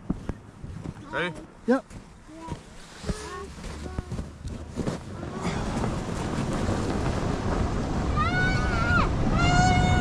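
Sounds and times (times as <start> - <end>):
knocks of snow tube: 2.5 - 7.8
wind on microphone: 2.5 - 10.0
tube sliding over snow: 2.6 - 10.0.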